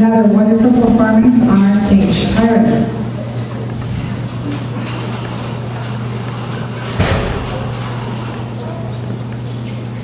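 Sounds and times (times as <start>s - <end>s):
large hall background noise: 0.0s - 10.0s
low electrical hum: 0.0s - 10.0s.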